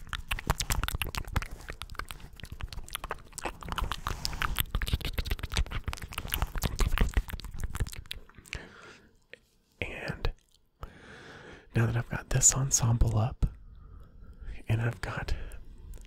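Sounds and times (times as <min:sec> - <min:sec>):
wet mouth clicks and smacks: 0:00.0 - 0:09.4.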